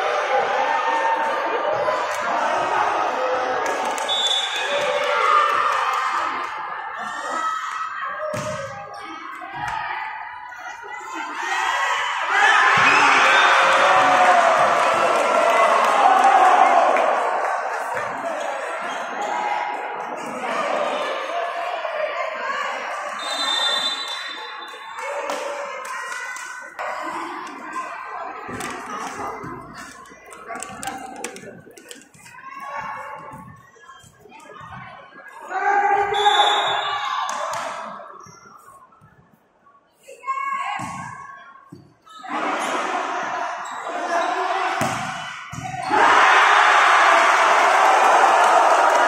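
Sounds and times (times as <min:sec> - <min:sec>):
crowd cheering: 0:00.0 - 0:08.7, 0:11.2 - 0:27.6, 0:42.3 - 0:49.0
murmur of voices: 0:00.0 - 0:49.0
high whistle tone: 0:04.1 - 0:04.7, 0:23.2 - 0:25.0, 0:36.1 - 0:37.1
players shouting: 0:42.2 - 0:49.0.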